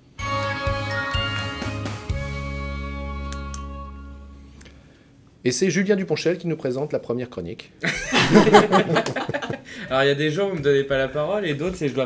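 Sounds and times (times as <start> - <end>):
bright chiming music: 0.2 - 4.6.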